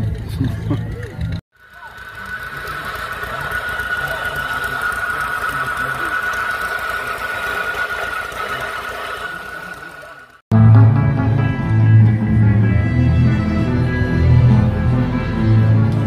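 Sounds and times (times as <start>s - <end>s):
burr mill grinding maize: 0.0s - 10.4s.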